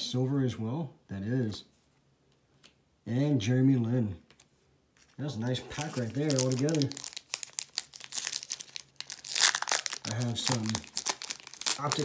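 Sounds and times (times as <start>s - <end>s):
foil wrapper crinkling: 5.0s - 12.0s.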